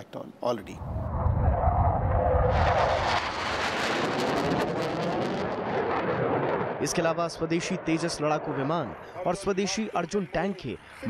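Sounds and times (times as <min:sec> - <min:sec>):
jet engine rumble: 0:00.7 - 0:09.9.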